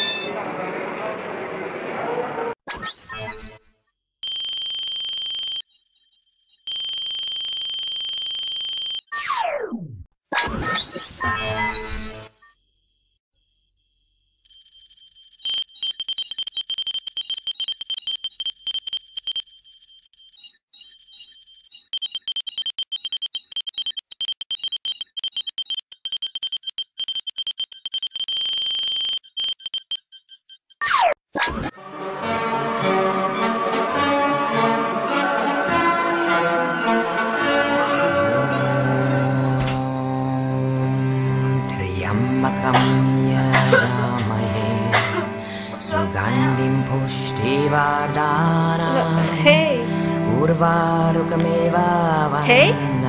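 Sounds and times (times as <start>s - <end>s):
steady high electronic beep: 0.0s - 0.3s, 2.9s - 9.1s, 10.8s - 30.6s
rapid short high beeps: 20.5s - 30.7s.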